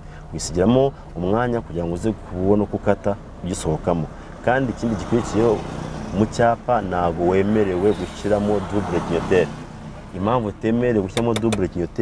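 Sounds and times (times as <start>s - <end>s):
person talking: 10.2s - 12.0s.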